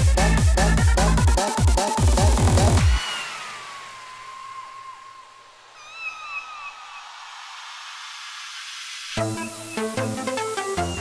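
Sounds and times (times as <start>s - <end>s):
rising noise sweep: 2.8s - 10.9s
sampled cat meow: 5.8s - 7.0s.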